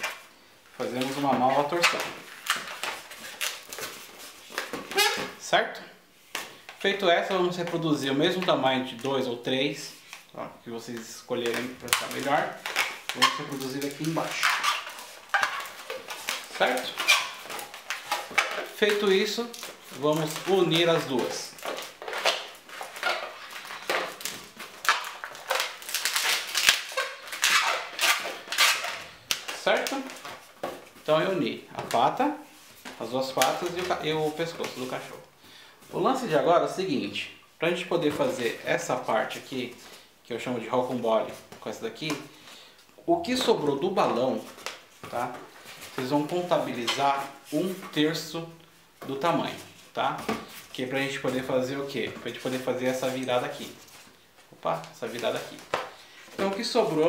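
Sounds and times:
balloon rubbing creaks: 0:04.7 - 0:05.4, 0:11.8 - 0:18.9, 0:24.9 - 0:29.1.

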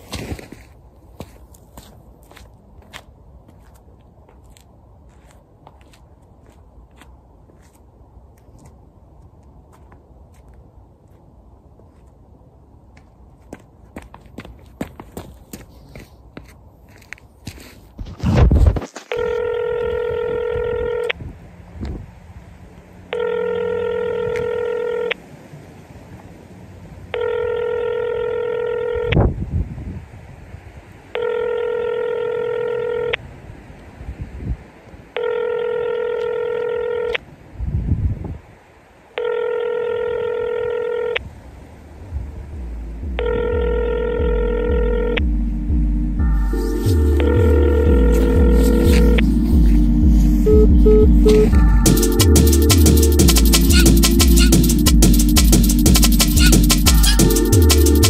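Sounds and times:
telephone ringback tone: 0:19.1 - 0:21.2, 0:23.1 - 0:25.2, 0:27.1 - 0:29.3, 0:31.2 - 0:33.2, 0:35.2 - 0:37.2, 0:39.2 - 0:41.2, 0:43.0 - 0:54.8
low thuds: 0:42.1 - 0:57.3
low bass music: 0:42.1 - 0:58.0.

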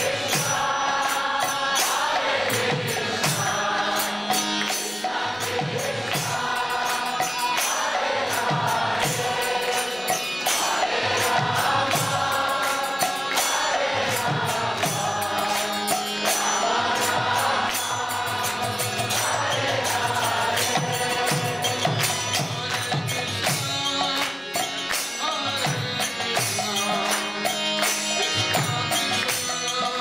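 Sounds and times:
harmonium chords: 0:00.0 - 0:30.0
jingling hand percussion: 0:00.0 - 0:30.0.

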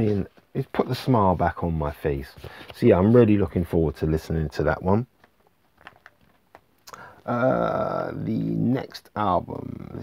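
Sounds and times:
vinyl records handled on desk: 0:05.1 - 0:06.7.

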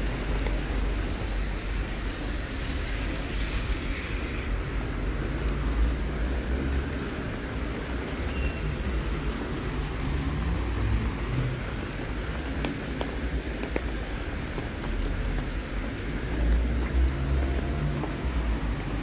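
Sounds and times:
car traffic on wet road: 0:00.0 - 0:19.0.

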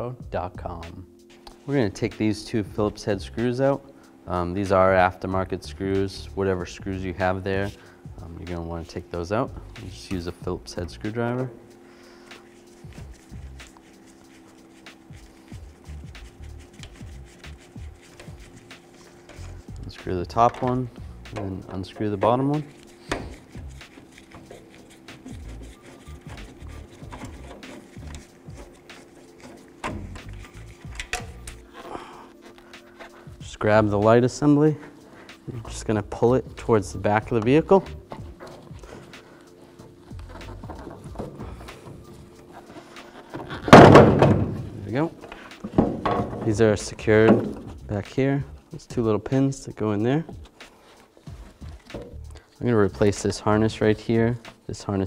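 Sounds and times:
soft music of held chords: 0:00.0 - 0:55.0
plastic knocks and creaks: 0:29.8 - 0:31.6, 0:40.1 - 0:46.6, 0:47.2 - 0:47.9.

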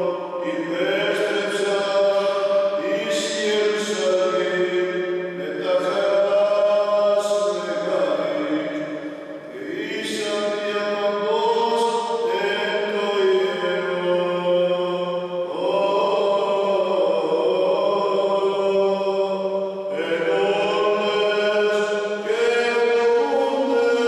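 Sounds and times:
man chanting: 0:00.0 - 0:24.0.

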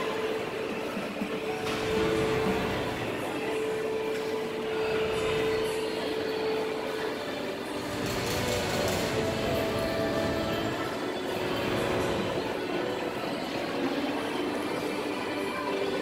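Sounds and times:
carousel rumbling drone: 0:00.0 - 0:16.0.

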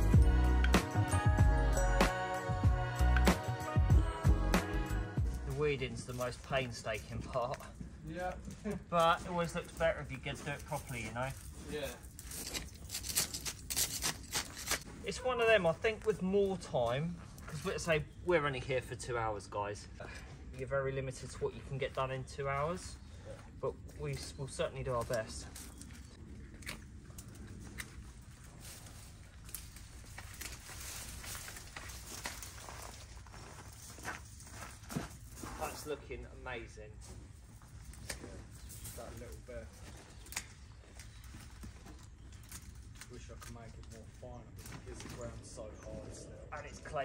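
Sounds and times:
branches rustling: 0:04.8 - 0:18.3, 0:21.2 - 0:45.6
weeds being torn out: 0:12.0 - 0:14.9, 0:26.6 - 0:33.2
hand tool scraping through gravel: 0:12.1 - 0:14.9
footsteps on gravel: 0:23.8 - 0:36.0.

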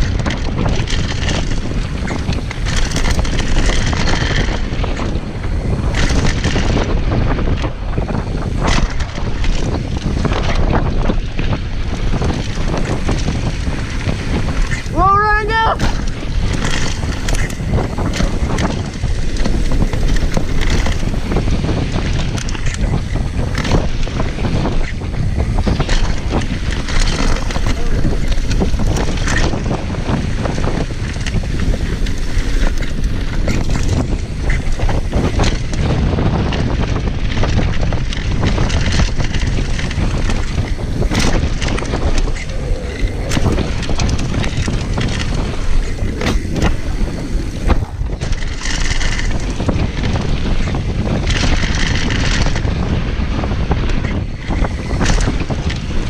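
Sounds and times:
bike knocks and rattles: 0:00.0 - 0:15.2, 0:15.8 - 0:56.0
tyres roaring on dirt trail: 0:00.0 - 0:56.0
wind buffeting microphone: 0:00.0 - 0:56.0.

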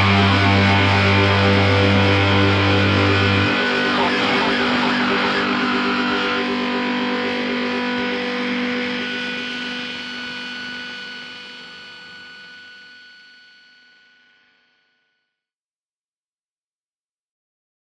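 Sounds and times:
distorted electric guitar chord: 0:00.0 - 0:11.8.

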